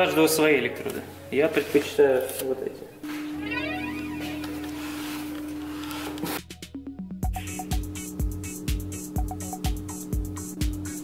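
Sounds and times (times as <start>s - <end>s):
held music note: 3.3s - 5.5s
sweeping effect: 3.3s - 5.7s.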